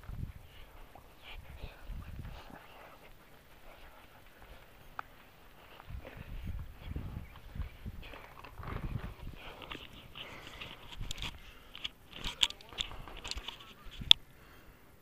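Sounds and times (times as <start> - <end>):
footsteps on grass: 0.1 - 12.0
camera handling noise: 7.3 - 14.2.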